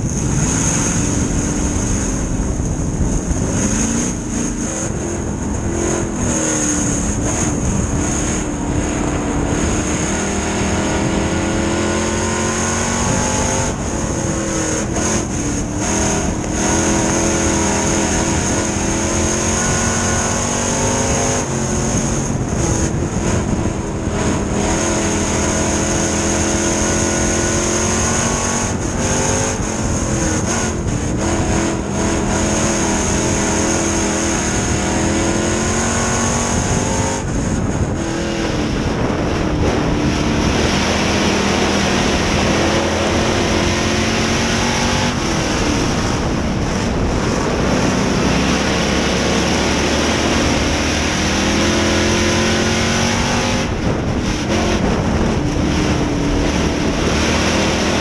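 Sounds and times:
race car engine revving: 0:00.0 - 0:58.0
steady high whine: 0:00.0 - 0:58.0.

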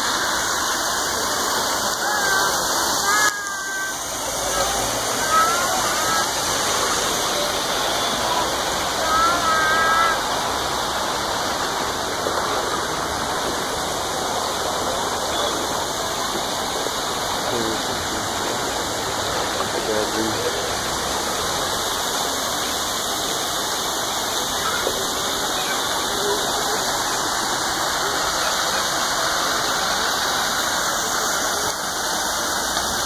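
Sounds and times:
running water rushing: 0:00.0 - 0:33.0.

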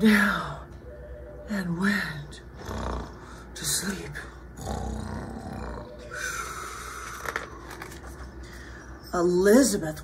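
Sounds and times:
woman making growling snores: 0:02.6 - 0:03.2.

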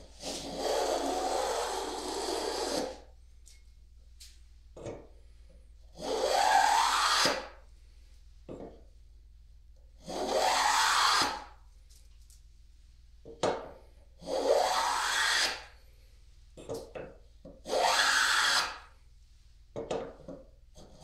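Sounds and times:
hand plane shaving wood: 0:00.1 - 0:03.0, 0:14.2 - 0:15.6, 0:17.7 - 0:18.8.

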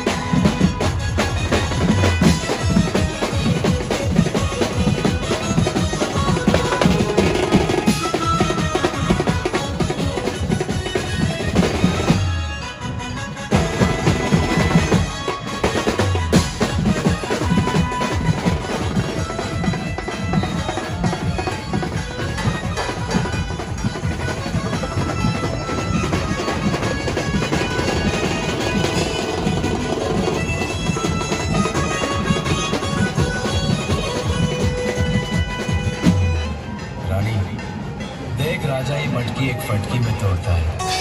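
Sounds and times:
drummers beating drums: 0:00.0 - 0:12.4, 0:13.5 - 0:40.8.

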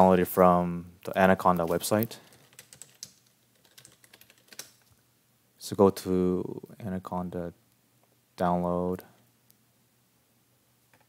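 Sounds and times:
computer keyboard typing: 0:02.2 - 0:04.9.

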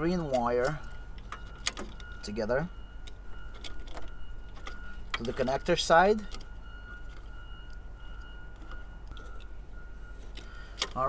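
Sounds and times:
wires clicking being twisted: 0:00.0 - 0:02.3, 0:03.0 - 0:09.6, 0:10.2 - 0:11.0
steady low hum: 0:00.0 - 0:11.0.

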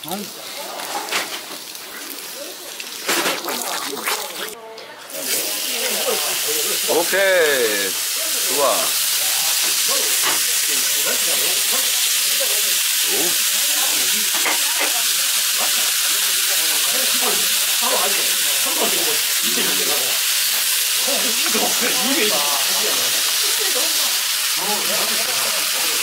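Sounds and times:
meat sizzling on grill: 0:00.0 - 0:26.0
murmur of voices: 0:00.0 - 0:26.0.

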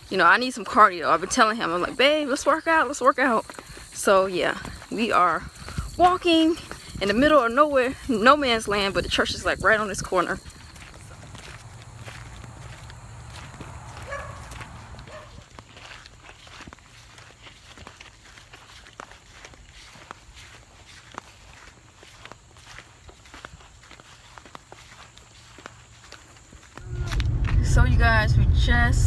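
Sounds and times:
footsteps on sandy dirt and grass: 0:00.0 - 0:28.2
low rumble: 0:26.8 - 0:29.0.

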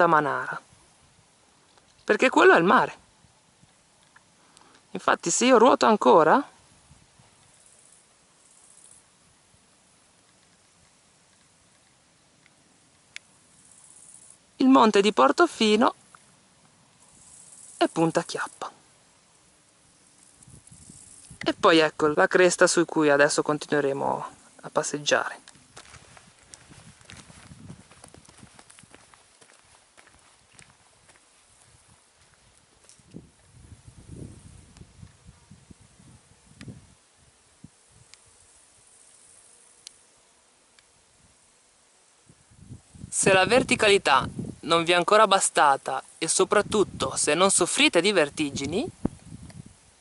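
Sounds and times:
faint background hiss: 0:00.0 - 0:50.0
faint high hiss: 0:00.0 - 0:50.0
footsteps on stony path: 0:25.3 - 0:33.6.

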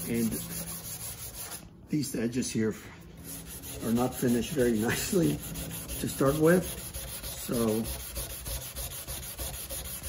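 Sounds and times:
hand sanding back and forth: 0:00.0 - 0:01.7, 0:03.0 - 0:10.0.

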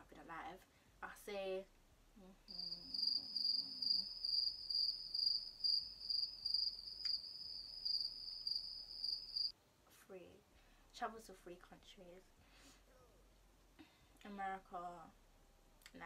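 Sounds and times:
cricket chirping trill: 0:02.5 - 0:09.5.

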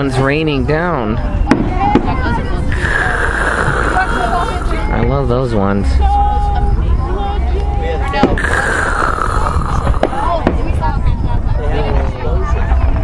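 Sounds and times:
crowd chatter: 0:00.0 - 0:13.0
fireworks bangs: 0:08.2 - 0:10.8.

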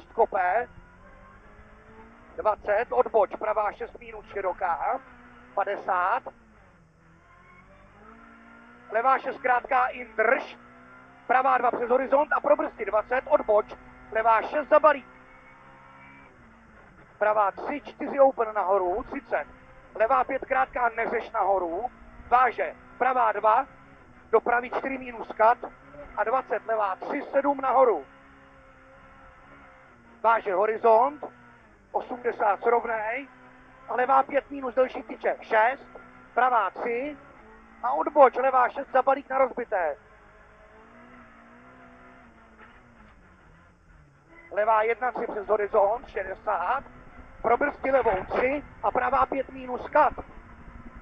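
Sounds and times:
muffled car engine running: 0:00.0 - 0:51.0.

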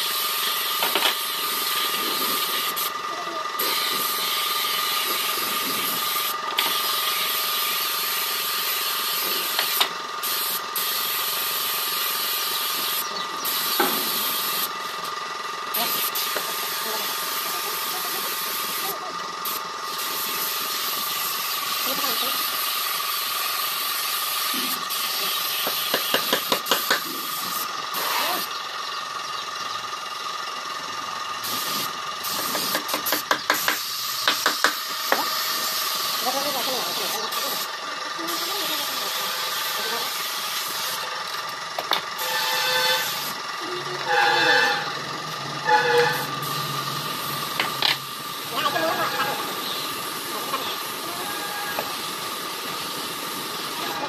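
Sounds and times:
paint spray gun hissing: 0:00.0 - 0:29.3, 0:31.4 - 0:43.5, 0:45.6 - 0:54.0.

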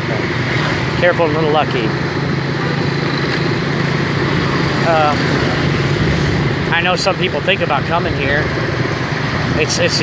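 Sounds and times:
motorbike engine running: 0:00.0 - 0:10.0
road and wind noise: 0:00.0 - 0:10.0.

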